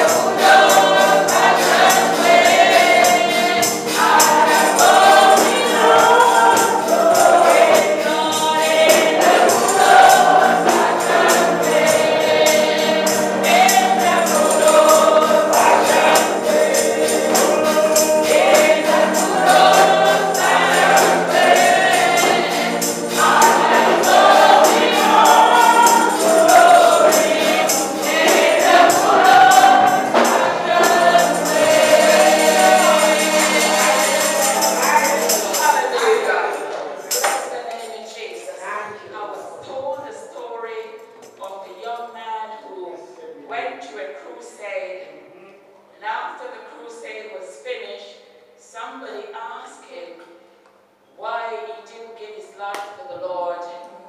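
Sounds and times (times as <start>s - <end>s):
tambourine beat: 0.0s - 36.4s, 37.1s - 37.6s
congregation singing gospel song: 0.0s - 41.8s.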